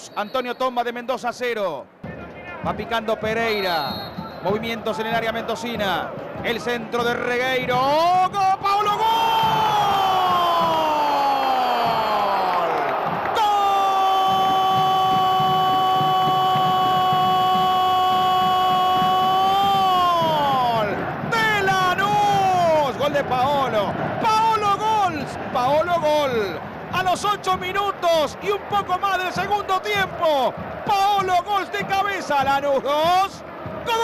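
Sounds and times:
stadium crowd cheering: 0.0s - 34.0s
commentator shouting goal cry: 2.5s - 34.0s.

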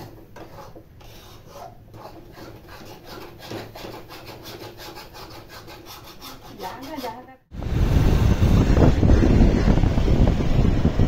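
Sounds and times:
spatula scraping metal pan: 0.0s - 7.3s.

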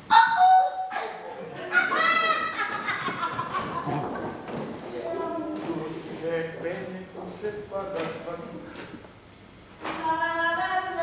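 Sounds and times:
high cry: 0.1s - 2.7s.

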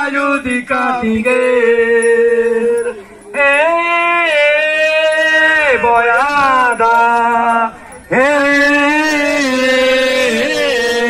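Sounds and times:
man singing long drawn-out note: 0.0s - 11.0s.

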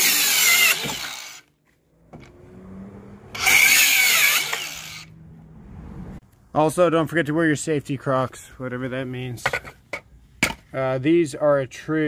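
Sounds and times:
circular saw cutting wood: 0.0s - 1.5s, 2.2s - 5.2s.

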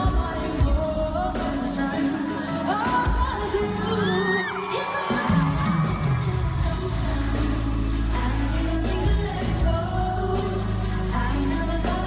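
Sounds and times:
woman singing into microphone: 0.0s - 12.0s
fans cheering: 3.9s - 6.9s
heavy bass: 6.2s - 12.0s.

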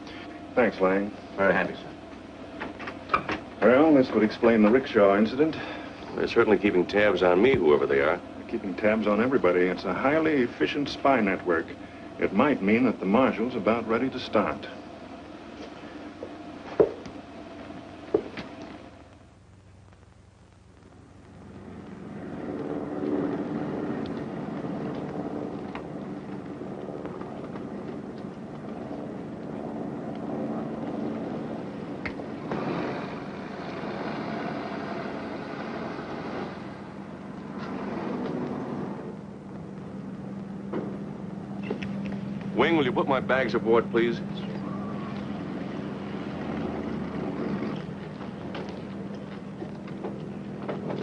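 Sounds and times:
film soundtrack hiss and hum: 0.0s - 51.0s
propeller aircraft engine droning: 0.0s - 51.0s.

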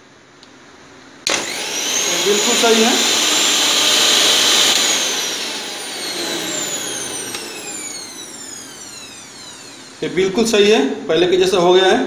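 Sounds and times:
mixer grinder motor whining: 1.3s - 10.7s.

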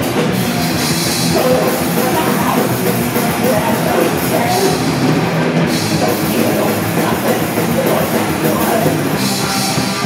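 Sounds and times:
distorted guitar and bass riffing: 0.0s - 10.0s
drums: 0.0s - 10.0s.

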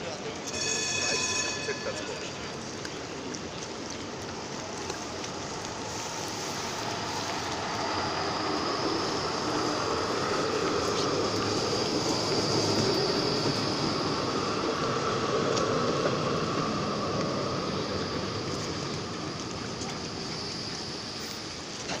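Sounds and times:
high whine of wheels on rail: 0.0s - 22.0s
tram rolling past: 0.0s - 22.0s.

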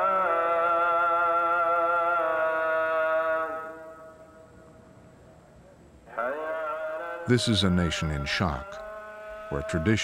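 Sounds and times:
man chanting a held note: 6.4s - 10.0s.

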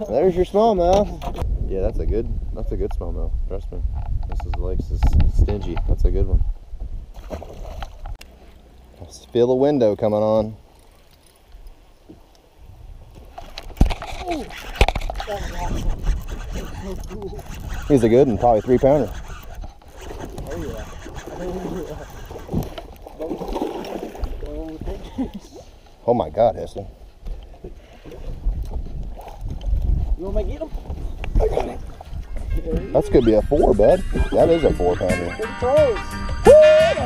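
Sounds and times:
wind: 0.0s - 37.0s
water around a boat: 5.2s - 36.0s.

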